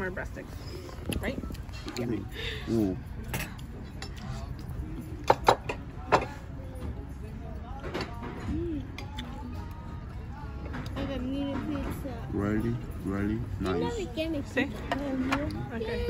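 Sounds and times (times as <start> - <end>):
hum of background voices: 0.4 - 16.0
cutlery clinking on plates: 3.2 - 7.0, 7.7 - 9.4.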